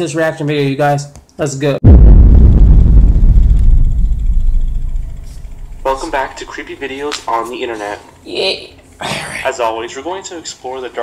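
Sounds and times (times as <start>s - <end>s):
deep low boom: 1.8s - 6.9s.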